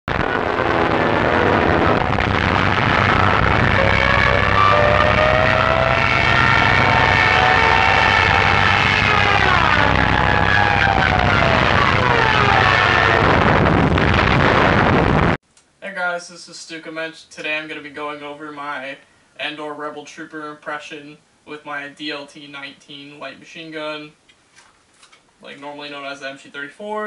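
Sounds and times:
high whine rising in pitch: 0:00.0 - 0:15.4
propeller engine drone: 0:00.1 - 0:15.4.

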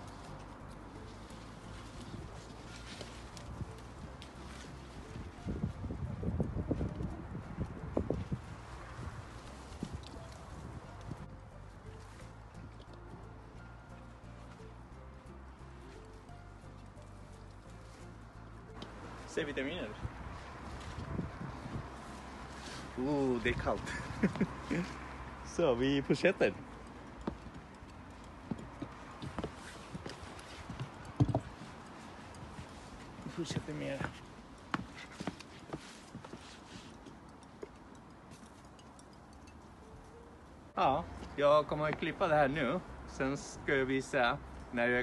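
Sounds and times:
footsteps on wooden decking: 0:27.0 - 0:38.7.

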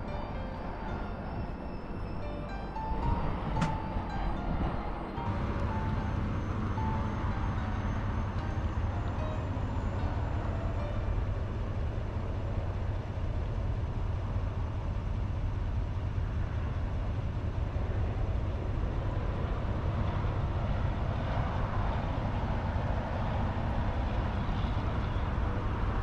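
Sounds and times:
boat engine running: 0:00.0 - 0:14.0.

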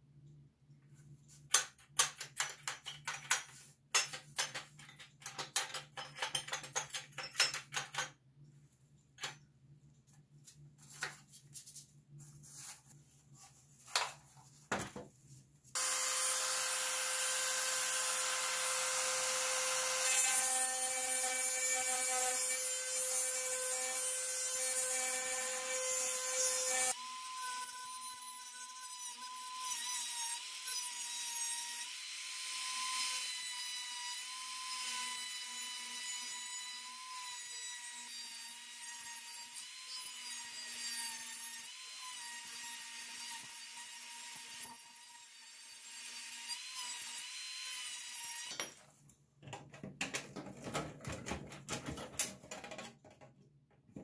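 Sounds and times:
rotary tool motor whine: 0:15.8 - 0:19.9.

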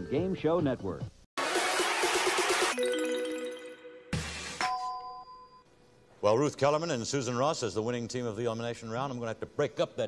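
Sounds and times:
two-tone electronic chime: 0:02.7 - 0:05.6.

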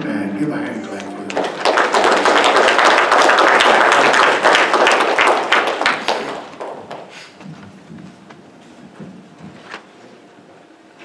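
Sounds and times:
congregation applauding: 0:00.7 - 0:07.4.

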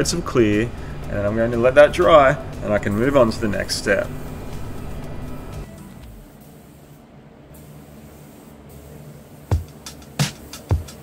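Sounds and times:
held music tones: 0:00.0 - 0:07.0.

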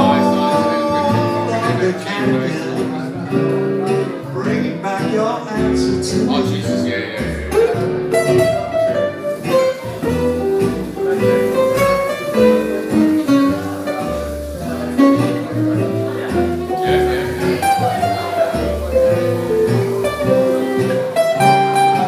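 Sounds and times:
acoustic guitars playing: 0:00.0 - 0:22.0
plucked double bass: 0:00.0 - 0:22.0.

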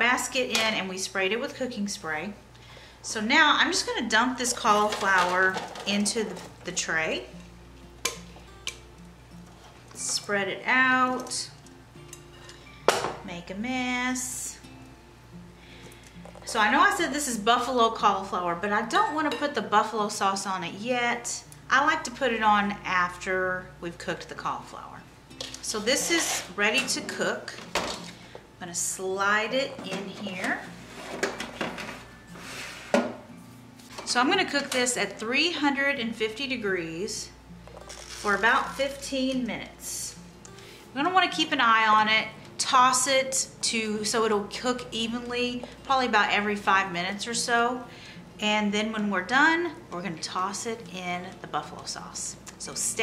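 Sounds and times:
soft background music: 0:00.0 - 0:53.0
metal tray scraping: 0:04.5 - 0:06.6, 0:25.6 - 0:27.3, 0:29.8 - 0:33.2, 0:37.8 - 0:38.8.

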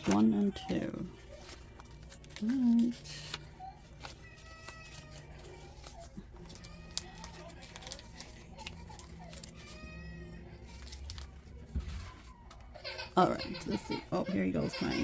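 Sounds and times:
paper rustling: 0:00.0 - 0:13.6.

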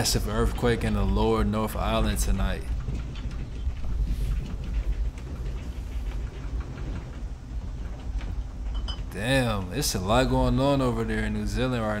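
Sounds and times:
deep earthquake rumble: 0:00.0 - 0:12.0
faint rattling: 0:00.0 - 0:12.0.

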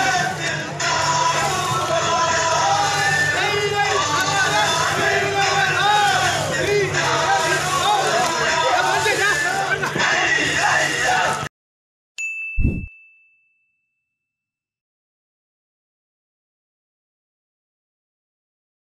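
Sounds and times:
crew chanting boat song: 0:00.0 - 0:11.5.

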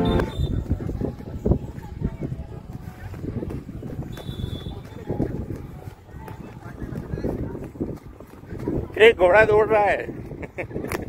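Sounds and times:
horse hooves thudding on dirt: 0:00.0 - 0:10.8
running footsteps: 0:00.0 - 0:11.0.

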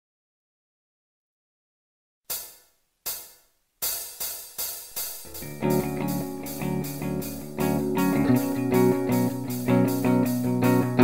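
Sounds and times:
hi-hat cymbal hits: 0:02.3 - 0:11.0.

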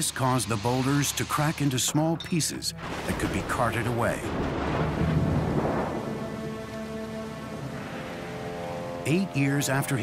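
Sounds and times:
thunder rumbling: 0:02.8 - 0:08.2
rain: 0:02.8 - 0:09.0.

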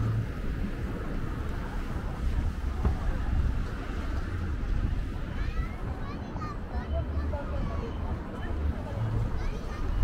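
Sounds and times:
wind buffeting microphone: 0:00.0 - 0:10.0
faint voices: 0:02.0 - 0:10.0.

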